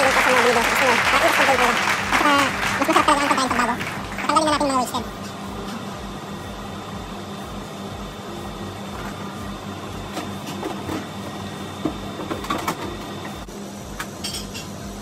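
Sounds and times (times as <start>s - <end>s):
refrigeration hum: 0.0s - 15.0s.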